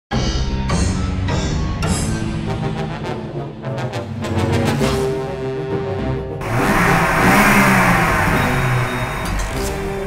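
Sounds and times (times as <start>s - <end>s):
background music: 0.1s - 10.0s
engine revving: 6.4s - 10.0s.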